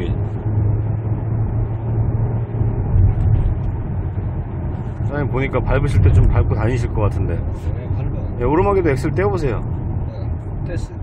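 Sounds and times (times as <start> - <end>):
car engine pulling under throttle: 0.0 - 11.0
road noise: 0.0 - 11.0.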